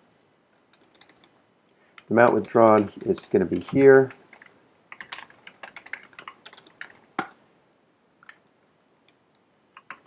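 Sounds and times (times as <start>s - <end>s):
computer keyboard typing: 0.7s - 1.4s, 2.0s - 7.4s, 9.7s - 10.0s.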